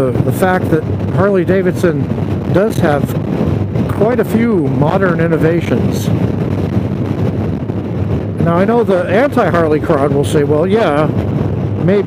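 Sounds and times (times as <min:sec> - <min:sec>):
motorcycle engine and road drone: 0:00.0 - 0:12.0
wind rushing over microphone: 0:00.0 - 0:12.0.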